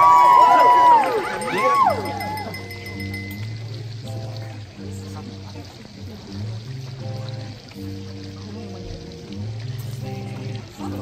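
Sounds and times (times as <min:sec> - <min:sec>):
slow music with long held notes: 0:00.0 - 0:11.0.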